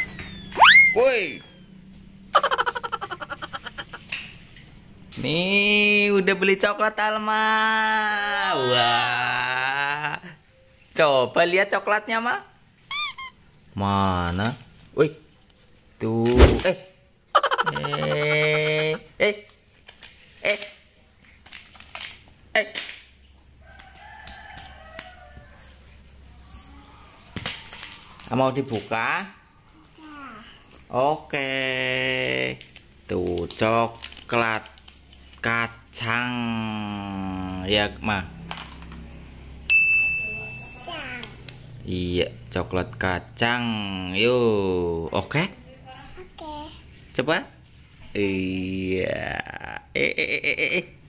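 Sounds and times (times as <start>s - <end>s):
animal rapid chirping call: 0.0s - 1.6s, 2.3s - 4.0s, 12.9s - 13.4s, 17.4s - 19.0s
insect chirping: 0.0s - 51.0s.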